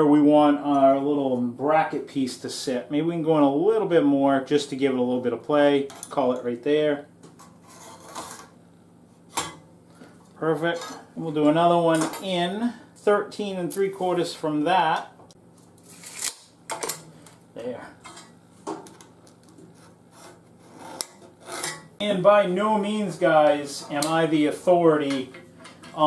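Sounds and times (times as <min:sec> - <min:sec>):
low steady hum: 0:00.0 - 0:26.0
metal scribe scratching aluminum: 0:07.4 - 0:08.5, 0:19.7 - 0:21.9.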